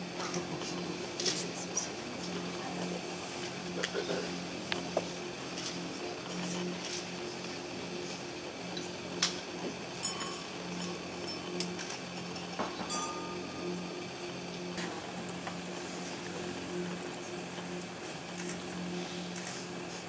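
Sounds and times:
steady low hum: 0.0 - 20.0
glasses clinking: 10.0 - 11.7, 12.3 - 13.4.

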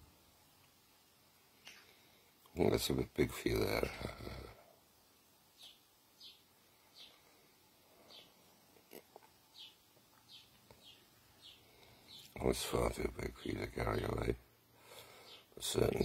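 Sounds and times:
sparrows chirping faintly: 5.0 - 16.0.

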